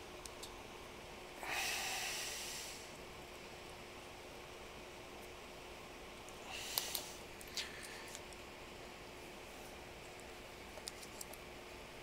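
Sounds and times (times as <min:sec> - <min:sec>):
person breathing out through nose: 0:01.4 - 0:02.9, 0:06.4 - 0:08.2.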